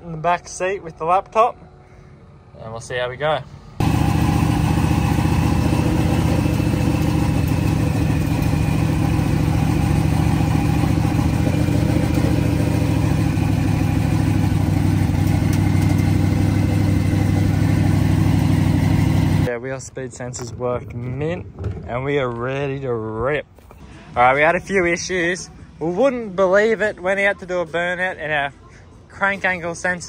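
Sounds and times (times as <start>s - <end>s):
race car engine running: 3.8s - 19.5s.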